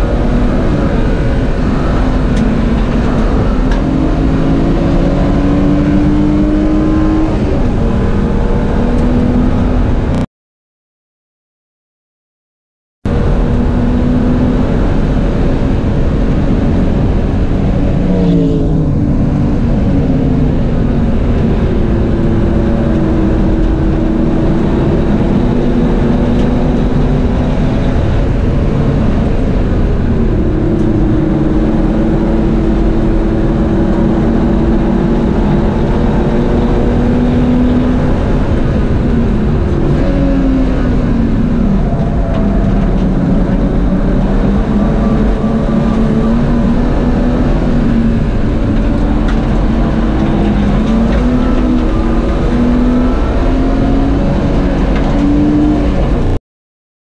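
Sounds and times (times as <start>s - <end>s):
race car engine revving: 0.0s - 10.2s, 13.1s - 56.4s
wind and road noise: 0.0s - 10.3s, 13.0s - 56.4s.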